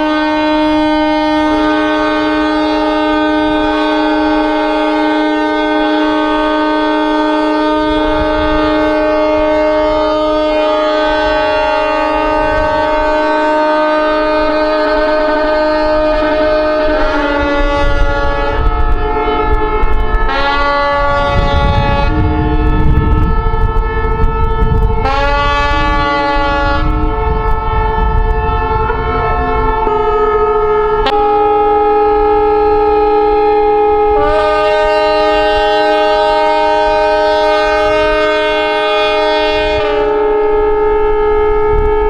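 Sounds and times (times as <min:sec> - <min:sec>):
ship horns blowing: 0:00.0 - 0:42.0.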